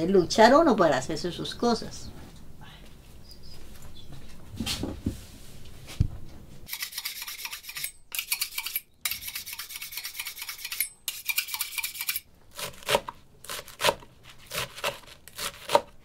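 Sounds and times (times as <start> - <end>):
knife scraping against metal: 6.7 - 12.3.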